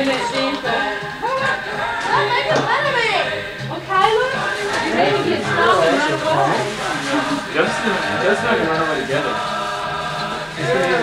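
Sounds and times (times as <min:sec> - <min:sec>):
choir music from loudspeaker: 0:00.0 - 0:11.0.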